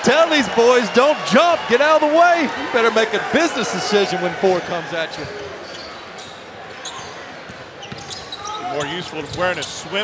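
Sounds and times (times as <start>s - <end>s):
short high squeaks: 5.6s - 7.2s.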